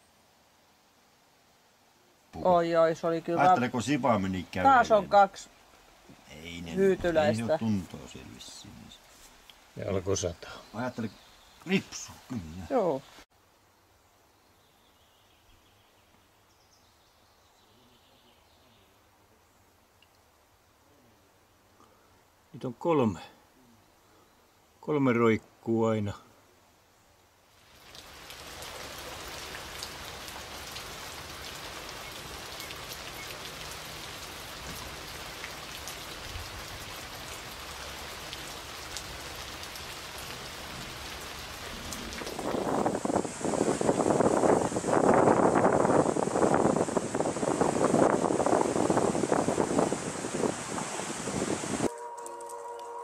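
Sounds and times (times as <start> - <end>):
rain hiss with fine patter: 0.0 - 53.0.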